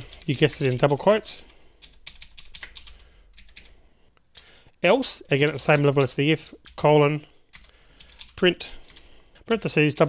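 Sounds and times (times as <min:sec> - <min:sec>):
person speaking: 0:00.0 - 0:01.6, 0:04.8 - 0:07.5, 0:08.2 - 0:10.0.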